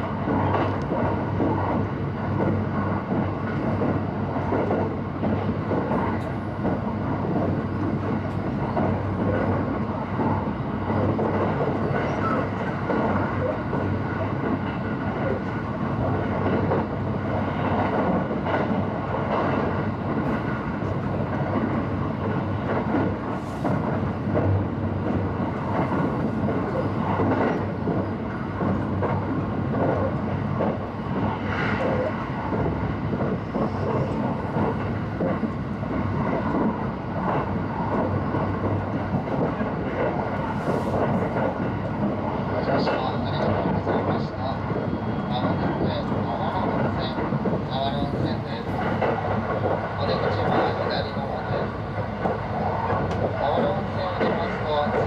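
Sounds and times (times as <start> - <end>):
train wheels rumbling on rail: 0.0 - 55.0.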